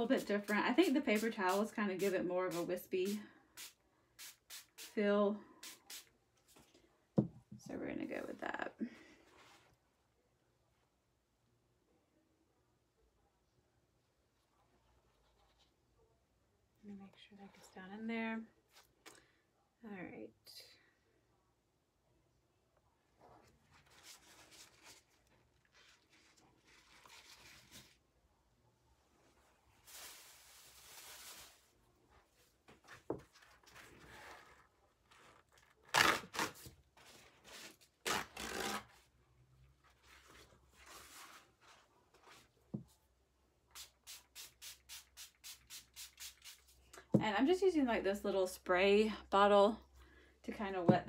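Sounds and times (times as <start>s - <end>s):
spray bottle squirting: 1.1s - 5.0s, 43.7s - 46.8s
paper towels rustling: 23.5s - 28.1s, 29.2s - 38.0s, 39.7s - 42.7s.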